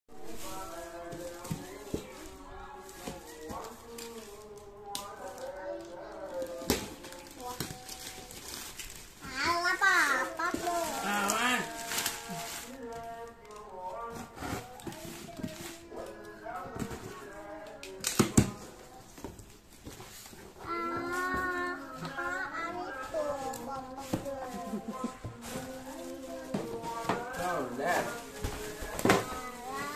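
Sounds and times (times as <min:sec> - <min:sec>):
plastic wrapping rustling: 0:00.1 - 0:29.9
children talking and calling: 0:00.2 - 0:29.9.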